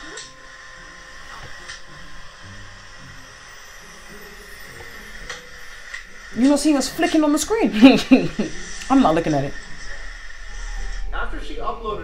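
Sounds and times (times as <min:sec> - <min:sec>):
steady hiss: 0:00.0 - 0:12.0
muffled voices talking: 0:06.3 - 0:12.0.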